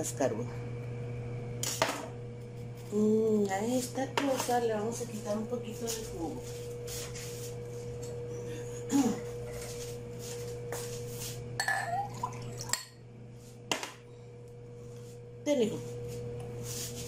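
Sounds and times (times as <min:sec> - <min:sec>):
steady low hum: 0:00.0 - 0:17.0
kitchenware clinking on countertop: 0:11.6 - 0:12.1.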